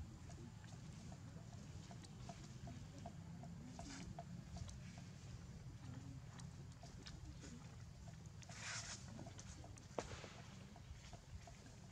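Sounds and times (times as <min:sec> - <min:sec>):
soft ticks: 0:00.1 - 0:07.2.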